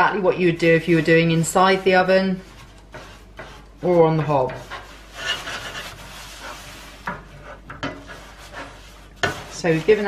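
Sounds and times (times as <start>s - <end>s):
cloth scrubbing metal tray: 0.0s - 10.0s.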